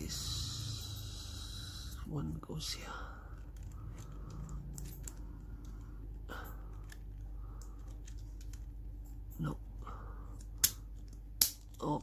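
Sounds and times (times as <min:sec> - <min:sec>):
plastic parts snapping together: 0:10.4 - 0:11.8.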